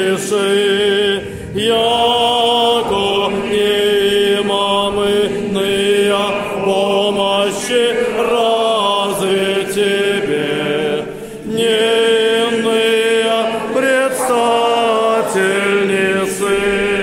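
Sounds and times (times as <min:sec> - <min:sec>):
group of voices chanting: 0:00.0 - 0:17.0.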